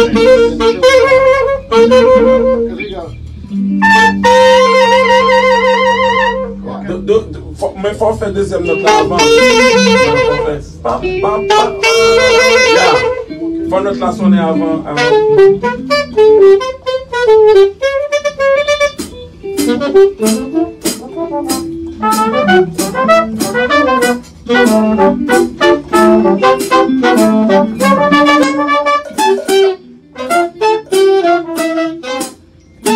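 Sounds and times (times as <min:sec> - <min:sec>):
horn section riff: 0:00.0 - 0:06.8, 0:08.6 - 0:32.9
wavering melody line: 0:00.0 - 0:07.2, 0:08.4 - 0:32.9
drum kit with cymbal hits: 0:07.5 - 0:13.7, 0:14.9 - 0:32.9.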